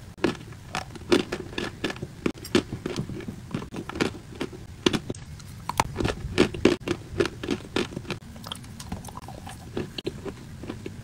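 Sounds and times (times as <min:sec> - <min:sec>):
chewing dry chalk: 0:00.2 - 0:11.0.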